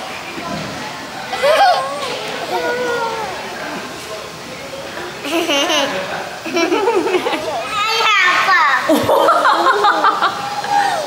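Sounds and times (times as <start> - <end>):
girl vocalizing and laughing: 1.3 - 3.4, 8.9 - 11.0
child squealing: 1.4 - 3.4, 10.6 - 11.0.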